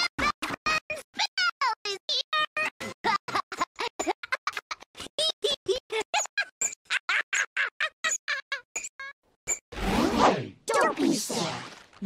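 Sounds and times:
stuttering cartoon singing and music: 0.0s - 2.9s.

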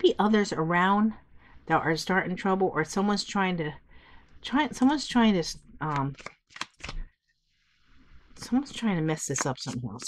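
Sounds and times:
cards snapping: 6.1s - 7.0s.

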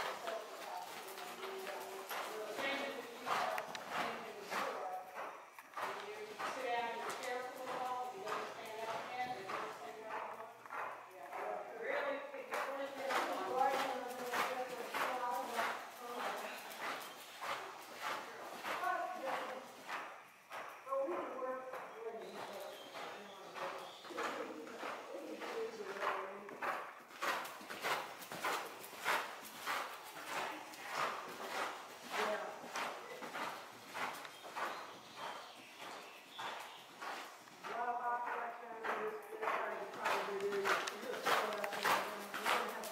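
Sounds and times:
horse hoofbeats cantering: 0.0s - 42.9s.

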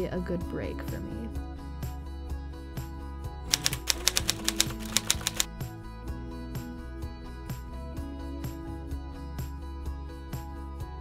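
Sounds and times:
soft background music: 0.0s - 11.0s
typewriter key clicks: 3.5s - 5.5s.

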